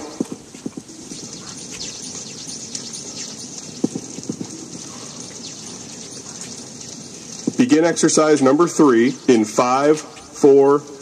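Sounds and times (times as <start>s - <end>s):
footsteps on wooden deck: 0.0s - 2.9s, 3.7s - 7.6s
steady background hiss: 0.0s - 11.0s.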